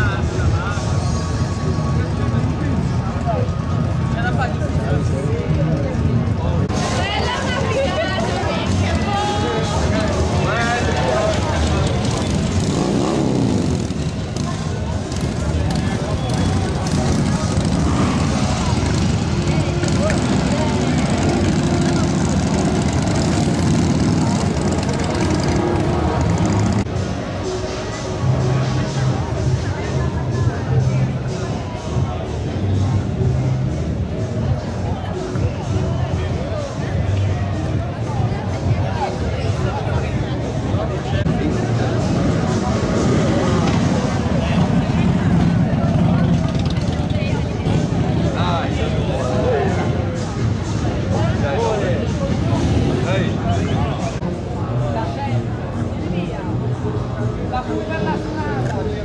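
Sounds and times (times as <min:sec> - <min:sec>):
motorcycle engine rumbling: 0:00.0 - 0:38.8, 0:40.2 - 0:59.0
crowd voices: 0:00.0 - 0:59.0
motorcycle engine running: 0:08.2 - 0:27.0, 0:41.3 - 0:51.3.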